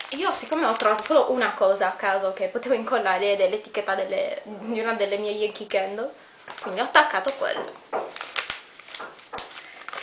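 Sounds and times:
paper pages rustling: 0:00.0 - 0:01.4, 0:06.4 - 0:10.0.

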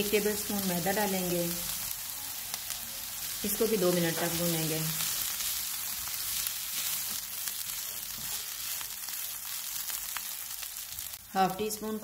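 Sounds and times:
food sizzling in frying pan: 0:00.0 - 0:12.0.

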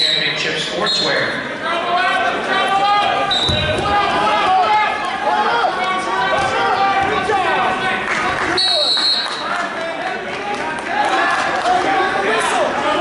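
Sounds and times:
people shouting in a gymnasium: 0:01.6 - 0:13.0
low thud: 0:03.4 - 0:04.0
high whistle blasts: 0:08.6 - 0:09.4.

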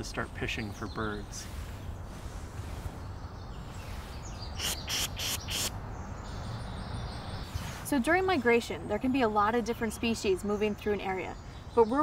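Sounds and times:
faint birdsong: 0:00.0 - 0:12.0.

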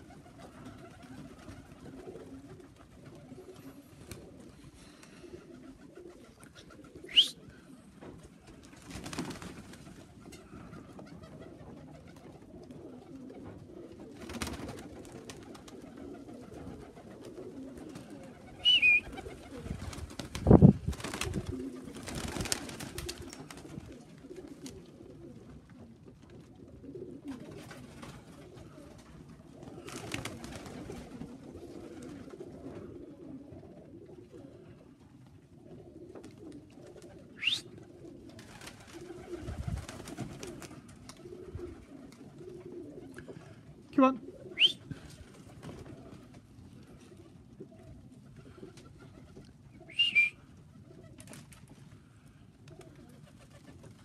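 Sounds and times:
wings flapping: 0:00.0 - 0:25.5, 0:27.2 - 0:32.9, 0:36.1 - 0:43.4, 0:44.6 - 0:47.0, 0:48.3 - 0:52.0, 0:52.6 - 0:54.0
pigeons cooing: 0:00.0 - 0:54.0
short high whistles: 0:07.1 - 0:07.4, 0:18.6 - 0:19.1, 0:37.4 - 0:37.7, 0:44.6 - 0:44.8, 0:49.9 - 0:50.4.

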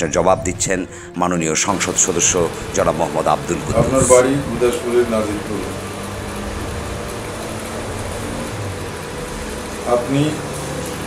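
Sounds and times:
steady hiss: 0:00.4 - 0:11.0.

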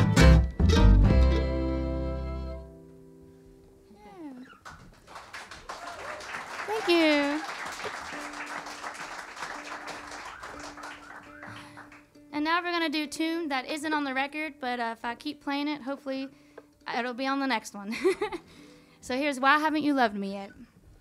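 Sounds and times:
people clapping and whooping: 0:04.5 - 0:12.1.

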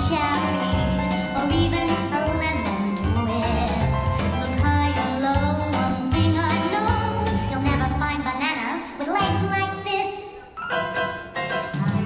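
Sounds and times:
instrumental backing with bass: 0:00.0 - 0:08.3.

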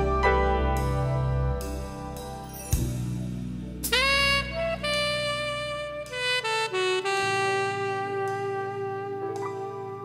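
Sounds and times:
jazz saxophone melody: 0:00.0 - 0:10.0.

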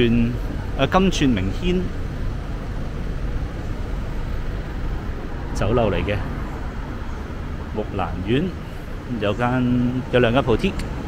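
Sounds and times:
city street traffic rumble: 0:00.0 - 0:11.0.

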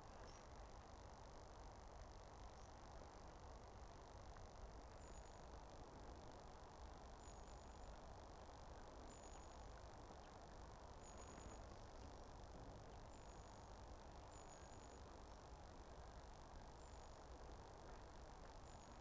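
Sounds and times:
faint steady hiss: 0:00.0 - 0:19.0
faint high-pitched peep: 0:04.9 - 0:05.6, 0:07.2 - 0:08.0, 0:09.0 - 0:10.3, 0:11.0 - 0:12.0, 0:13.0 - 0:15.4.

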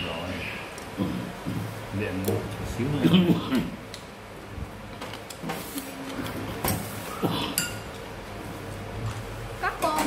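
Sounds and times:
chopsticks and spoon clinking bowl: 0:07.3 - 0:08.1.

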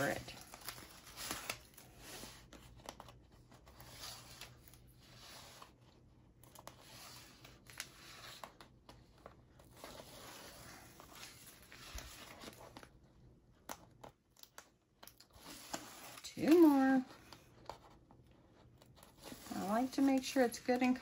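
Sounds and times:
paper handled: 0:13.6 - 0:18.0, 0:18.6 - 0:21.0.

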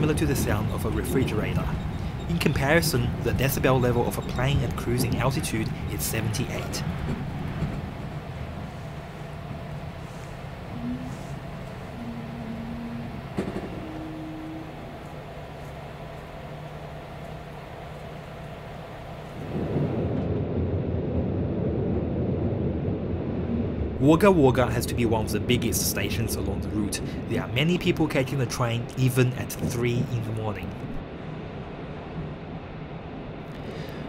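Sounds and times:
train carriage hum and rumble: 0:00.0 - 0:20.5, 0:23.4 - 0:34.0
short faint tones: 0:10.0 - 0:17.5.

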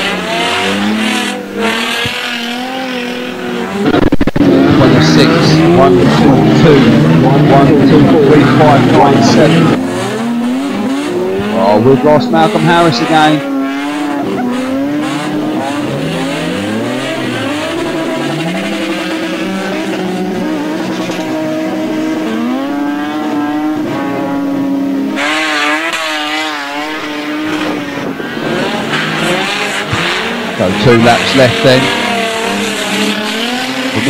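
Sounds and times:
race car engines revving: 0:00.0 - 0:34.0.

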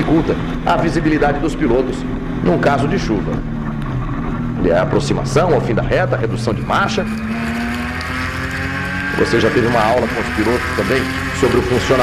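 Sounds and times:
race car engine accelerating: 0:00.0 - 0:12.0.

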